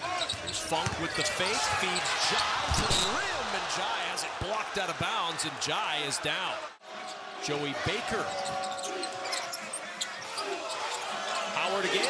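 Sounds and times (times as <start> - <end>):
sneaker squeaks: 0.1 - 3.3, 8.2 - 11.6.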